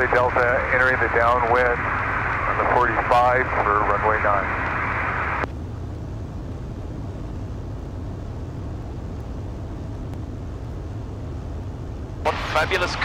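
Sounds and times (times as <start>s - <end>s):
aircraft engine droning: 0.0s - 13.0s.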